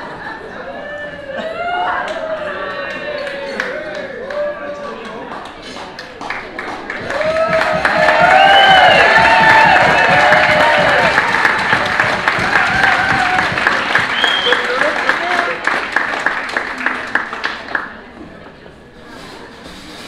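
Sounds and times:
whoops and shouts: 0.8 - 4.8, 7.1 - 11.1
audience clapping: 2.0 - 18.2.

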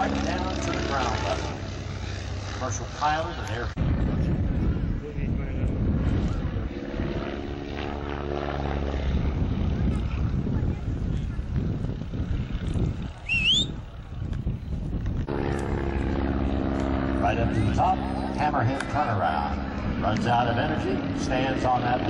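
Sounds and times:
propeller plane engine droning: 0.0 - 22.0
short rising whistle: 13.2 - 13.8.

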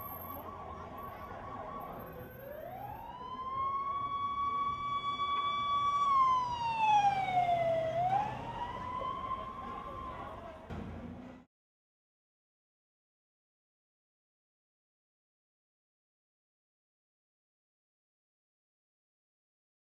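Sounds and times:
emergency siren wailing: 0.0 - 10.7
low traffic rumble: 0.0 - 11.5.

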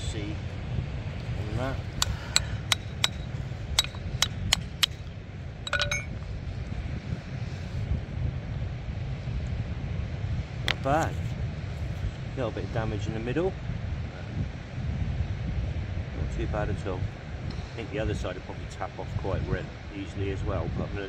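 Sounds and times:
rock hammer tapping stone: 2.0 - 5.0
short ringing clink: 2.0 - 5.0, 5.6 - 6.2.

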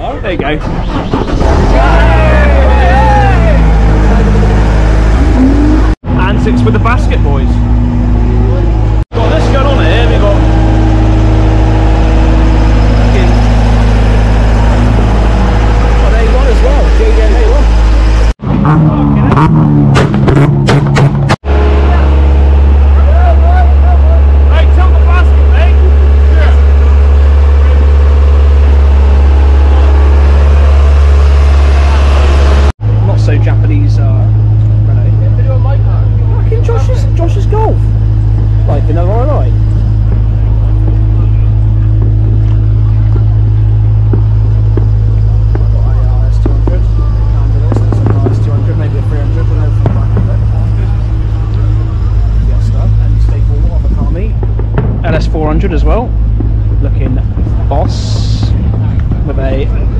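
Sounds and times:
voices: 0.0 - 19.7, 21.5 - 59.9
boom lift engine humming: 0.0 - 59.9.

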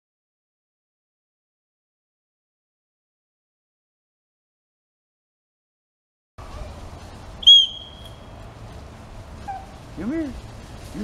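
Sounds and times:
dog-training whistle blast: 7.4 - 8.1.

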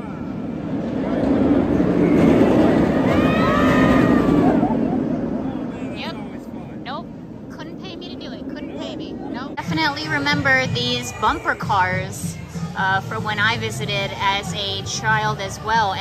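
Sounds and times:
roller coaster train rumbling: 0.0 - 16.0
riders screaming: 2.9 - 4.9.

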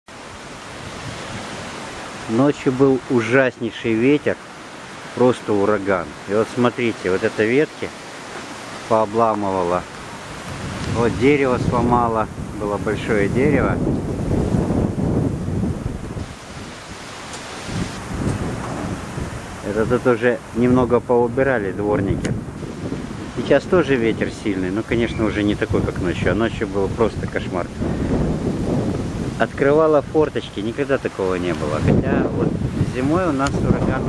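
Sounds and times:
strong wind blowing: 0.1 - 3.1, 4.4 - 34.0.

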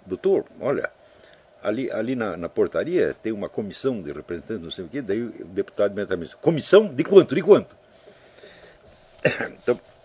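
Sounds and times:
man coughing: 9.2 - 9.8.

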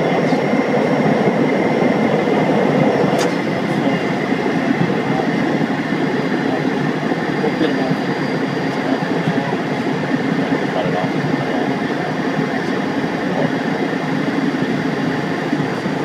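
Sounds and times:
light aircraft cockpit noise: 0.0 - 16.0.

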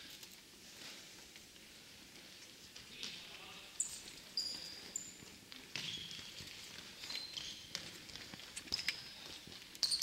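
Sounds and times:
shoes squeaking on wooden floor: 3.9 - 9.2.

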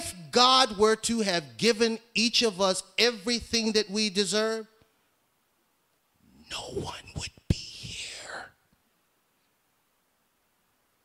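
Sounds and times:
man whispering: 6.3 - 8.6.

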